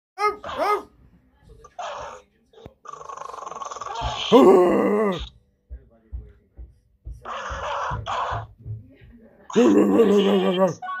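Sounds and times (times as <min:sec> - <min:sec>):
dog growling: 0:02.8 - 0:05.3.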